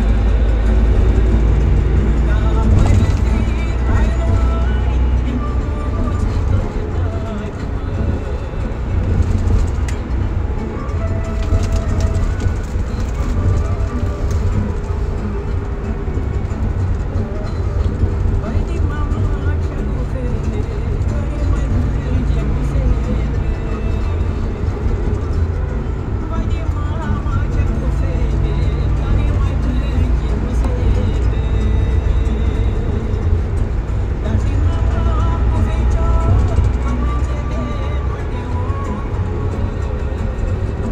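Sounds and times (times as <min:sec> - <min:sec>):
faint radio music: 0:00.0 - 0:40.9
minibus engine and road rumble: 0:00.0 - 0:40.9.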